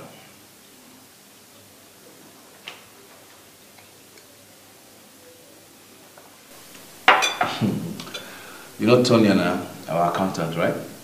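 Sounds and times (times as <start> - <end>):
steady hiss: 0.0 - 11.0
cutlery clicking on plates: 7.1 - 8.4.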